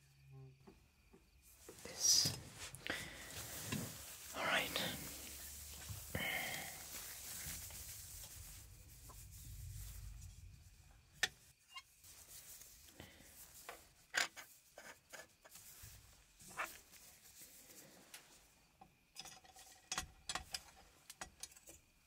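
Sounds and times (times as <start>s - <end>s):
soft rubbing: 1.4s - 18.6s.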